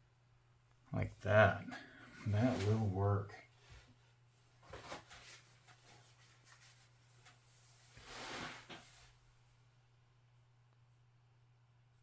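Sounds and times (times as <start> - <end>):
low steady hum: 0.0 - 12.0
soft rustle: 2.1 - 9.5.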